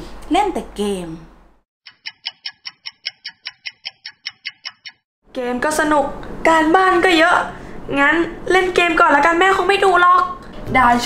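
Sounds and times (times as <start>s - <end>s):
clock ticking fast: 1.9s - 5.0s.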